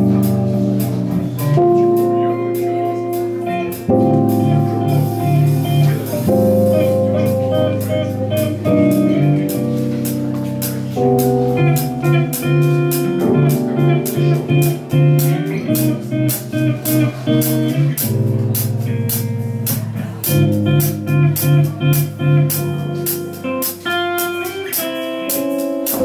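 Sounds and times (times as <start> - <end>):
repeated low bass notes: 0.0 - 24.8
drums with steady cymbal beat: 0.0 - 26.0
electric guitar playing chords: 0.0 - 26.0.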